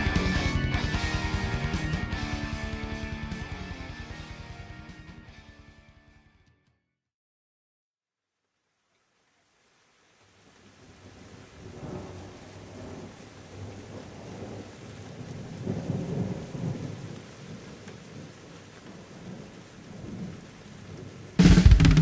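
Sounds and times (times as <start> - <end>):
steady rain: 0.0 - 3.7, 8.3 - 22.0.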